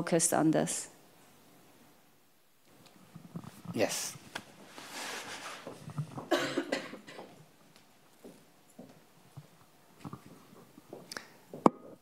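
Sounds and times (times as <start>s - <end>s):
person coughing: 6.2s - 7.3s.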